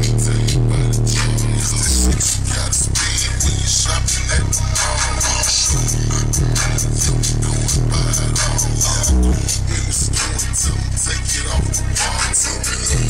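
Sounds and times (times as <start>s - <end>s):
bass-heavy electronic music: 0.0s - 13.0s.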